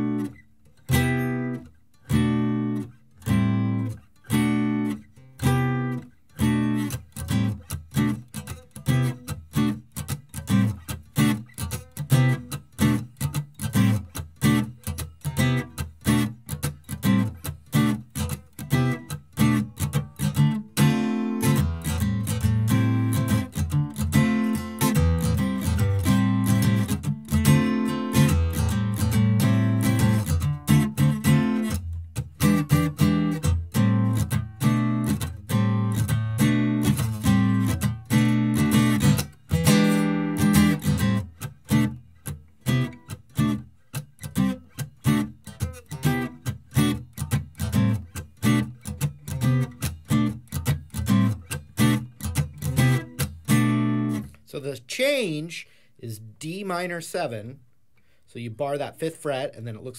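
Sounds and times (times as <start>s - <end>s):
acoustic guitar strummed: 0.0s - 57.4s.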